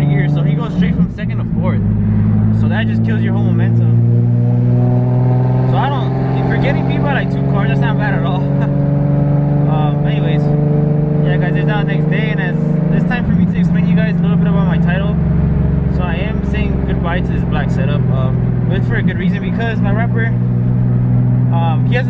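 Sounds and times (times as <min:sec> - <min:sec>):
car engine accelerating: 0:00.0 - 0:22.0.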